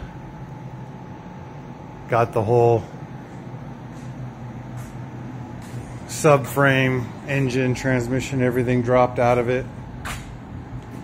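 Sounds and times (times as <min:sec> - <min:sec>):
fan hum and hiss: 0:00.0 - 0:11.0.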